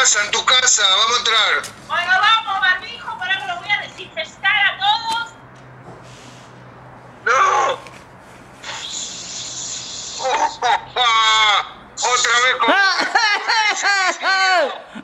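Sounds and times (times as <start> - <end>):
people making wordless cries: 7.2 - 7.9.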